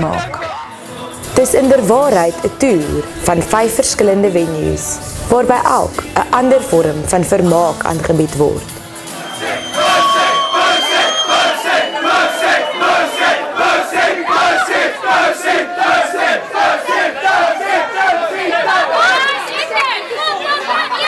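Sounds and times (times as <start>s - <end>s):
crowd shouting and chanting: 0.0s - 1.2s, 8.8s - 21.0s.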